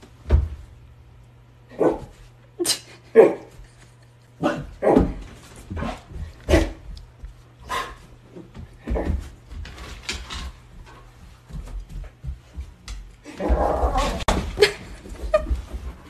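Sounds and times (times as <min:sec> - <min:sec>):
dogs barking in play: 0:01.7 - 0:02.2.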